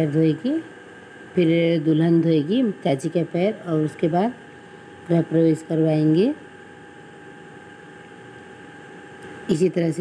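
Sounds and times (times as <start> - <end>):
thin steady whine: 0.0 - 10.0.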